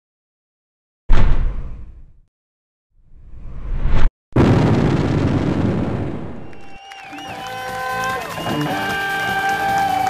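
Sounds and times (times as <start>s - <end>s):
loud boom impact: 4.4s - 6.7s.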